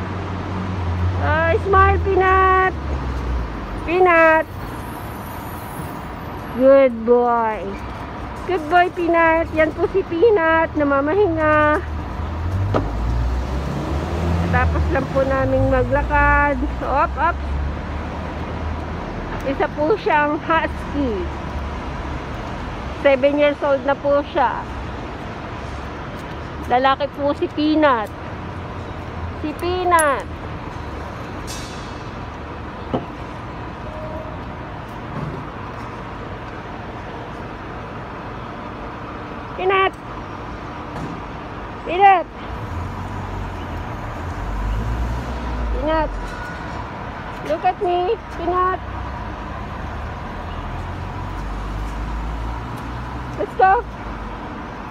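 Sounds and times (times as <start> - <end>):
traffic rumble: 0.0 - 54.9.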